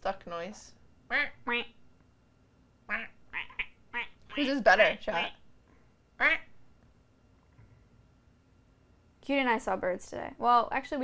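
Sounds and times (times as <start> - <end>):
woman imitating duck quack: 2.9 - 5.4, 6.2 - 6.5.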